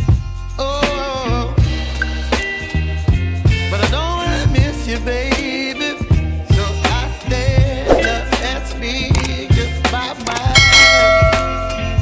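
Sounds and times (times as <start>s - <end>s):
background music with a beat: 0.0s - 12.0s
bell chime ringing: 10.6s - 12.0s.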